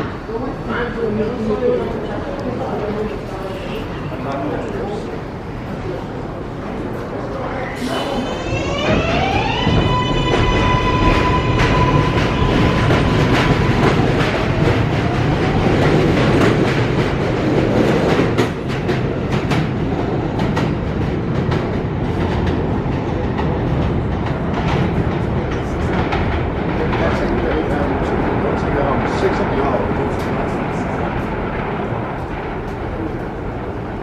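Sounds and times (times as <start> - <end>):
train wheels rumbling: 0.0 - 34.0.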